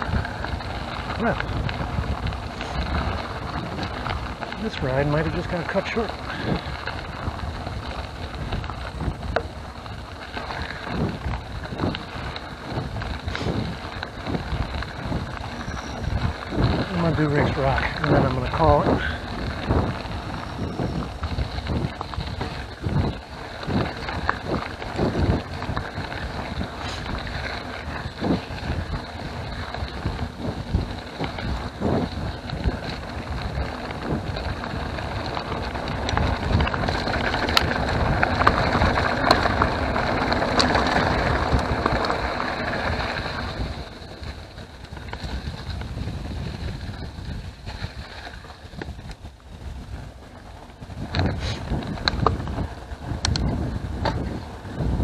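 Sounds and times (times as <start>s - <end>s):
bike rattling over bumps: 0.0s - 55.0s
bike tyres crunching gravel: 0.0s - 55.0s
wind on microphone: 0.0s - 55.0s.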